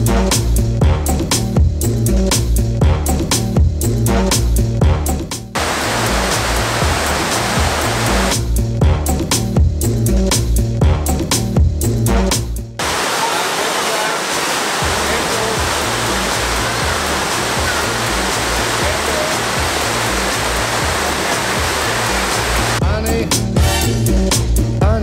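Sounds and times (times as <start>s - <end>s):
background music with a beat: 0.0s - 12.8s, 14.8s - 25.0s
waterfall rushing over rocks: 5.6s - 8.4s, 12.8s - 22.8s.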